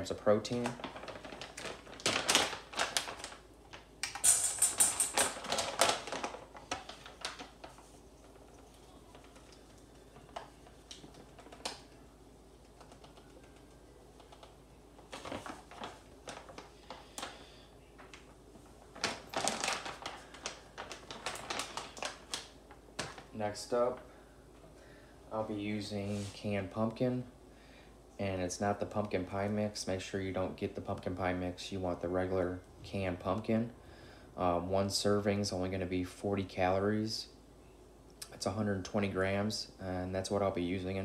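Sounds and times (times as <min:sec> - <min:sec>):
plastic bag crinkling: 0:00.0 - 0:12.0, 0:14.2 - 0:24.2.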